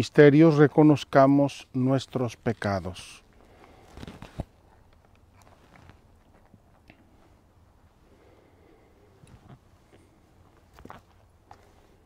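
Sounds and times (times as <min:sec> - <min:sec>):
faint low background rumble: 0:00.0 - 0:12.0.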